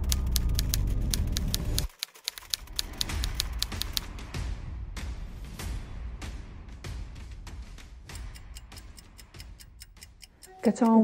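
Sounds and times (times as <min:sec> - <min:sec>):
typewriter key clicks: 0:00.0 - 0:04.1.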